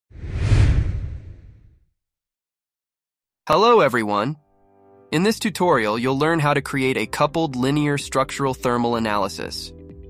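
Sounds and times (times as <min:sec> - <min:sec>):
whoosh with low rumble: 0:00.1 - 0:01.8.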